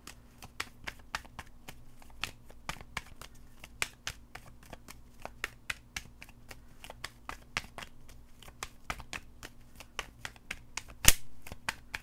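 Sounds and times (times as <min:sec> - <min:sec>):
cards being shuffled: 0:00.0 - 0:12.0
sharp card snap: 0:08.6 - 0:12.0.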